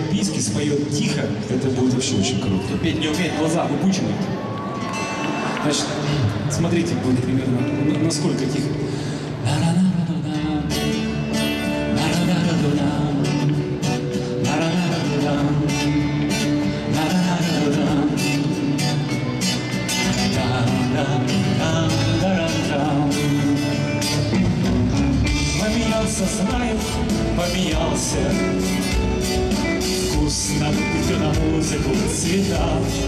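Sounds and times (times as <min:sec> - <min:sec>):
rock band playing live: 0:04.1 - 0:33.0
man singing: 0:07.5 - 0:33.0.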